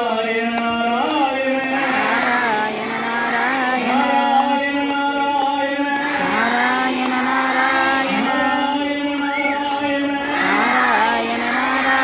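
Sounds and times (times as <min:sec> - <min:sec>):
crowd singing devotional song: 0:00.0 - 0:12.0
light regular beat: 0:01.6 - 0:04.6.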